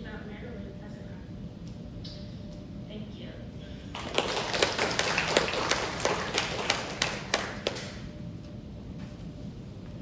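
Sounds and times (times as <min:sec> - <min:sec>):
audience applauding: 0:03.9 - 0:08.0
sharp single hand claps: 0:05.0 - 0:08.0.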